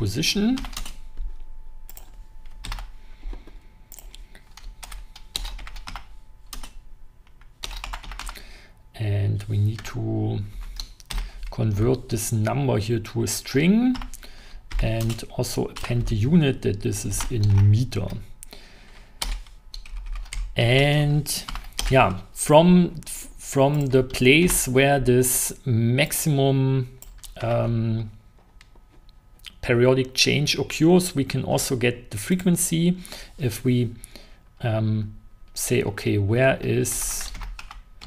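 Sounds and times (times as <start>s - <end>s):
typing on computer keyboard: 0.6s - 1.0s, 3.9s - 8.4s, 10.6s - 11.5s, 19.2s - 20.6s, 37.0s - 37.8s.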